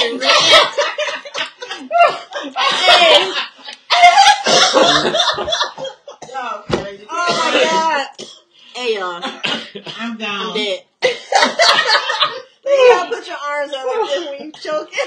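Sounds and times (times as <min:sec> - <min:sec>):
people talking: 0:00.0 - 0:08.2, 0:08.8 - 0:15.0
person coughing: 0:04.3 - 0:06.5, 0:07.2 - 0:08.5, 0:09.3 - 0:10.2.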